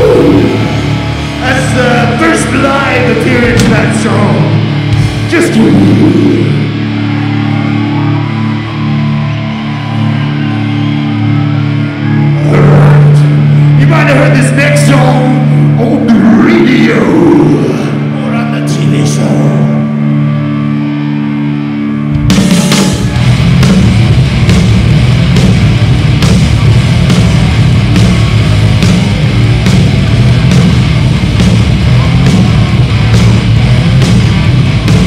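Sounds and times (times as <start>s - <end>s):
metal band guitar and bass: 0.0s - 35.0s.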